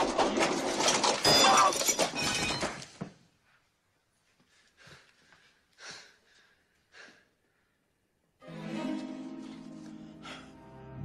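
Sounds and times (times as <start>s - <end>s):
metallic clatter and crash: 0.0s - 2.8s.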